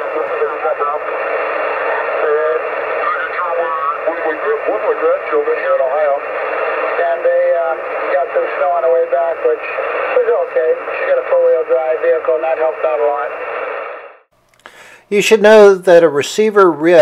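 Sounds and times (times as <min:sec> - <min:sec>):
radio voice shifting off-tune: 0:00.0 - 0:13.8
steady radio hiss: 0:00.0 - 0:17.0.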